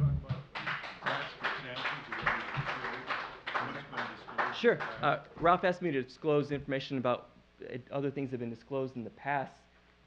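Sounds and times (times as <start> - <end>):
indistinct low conversation: 0.0 - 6.8.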